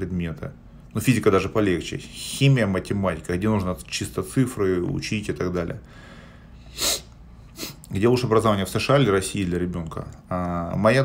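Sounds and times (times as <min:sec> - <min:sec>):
man breathing sharply through nose: 0:05.9 - 0:07.8.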